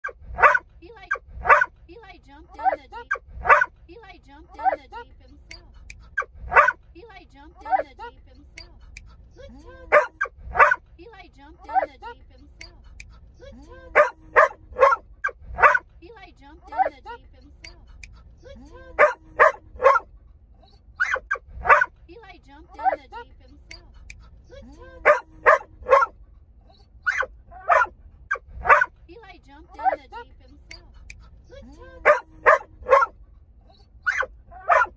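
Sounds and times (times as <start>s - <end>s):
large dog barking: 0.0s - 1.8s, 3.4s - 3.8s, 6.2s - 6.8s, 9.9s - 10.8s, 13.9s - 15.9s, 19.0s - 20.1s, 21.0s - 22.0s, 25.0s - 26.2s, 27.0s - 29.0s, 32.0s - 33.2s, 34.0s - 34.9s.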